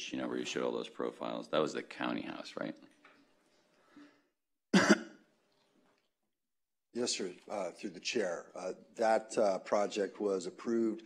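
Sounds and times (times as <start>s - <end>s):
man coughing: 4.7s - 5.2s.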